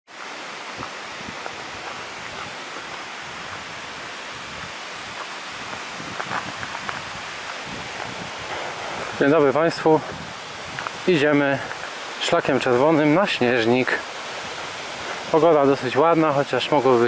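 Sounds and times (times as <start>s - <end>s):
wind: 0.1s - 17.0s
footsteps on gravel: 0.2s - 9.2s.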